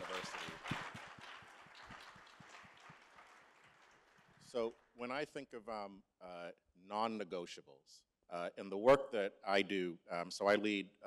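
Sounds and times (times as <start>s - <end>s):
faint applause: 0.0s - 4.9s.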